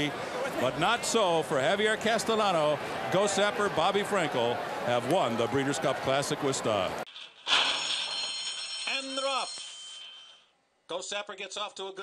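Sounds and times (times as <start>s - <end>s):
starting gate bell ringing: 7.7s - 10.5s.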